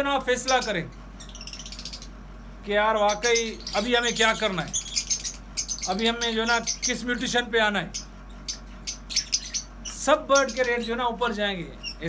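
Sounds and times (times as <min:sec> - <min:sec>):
lovebirds chirping: 0:00.0 - 0:12.0
low steady hum: 0:00.0 - 0:12.0.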